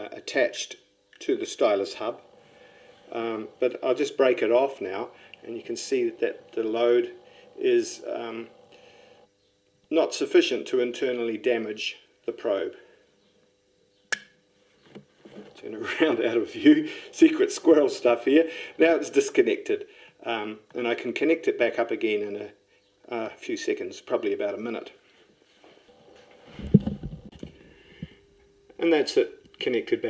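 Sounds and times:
sharp click of probe: 14.1 - 14.4
dull knocks and bumps: 26.6 - 27.6.

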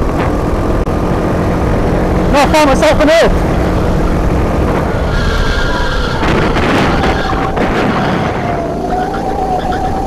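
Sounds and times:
kart engine running at speed: 0.0 - 10.0
wind rumble on microphone: 0.0 - 10.0.

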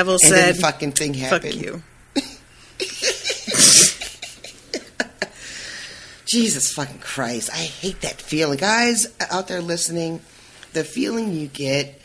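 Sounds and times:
loud breathy burst: 5.3 - 6.3.

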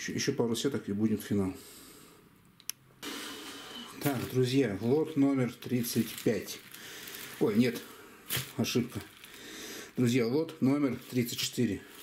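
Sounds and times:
sharp click: 2.6 - 2.8
recording hiss: 3.0 - 12.0.

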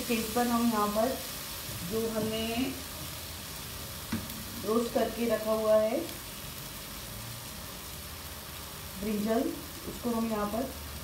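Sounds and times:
food sizzling in a frying pan: 0.0 - 11.0.

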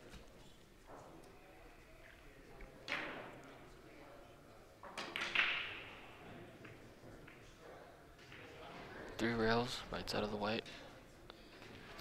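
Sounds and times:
billiard balls clicking: 4.8 - 6.0.

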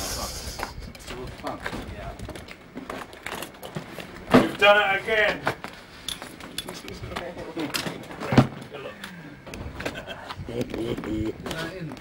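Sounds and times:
loud thump of luggage loading: 4.3 - 4.6, 8.3 - 8.6.

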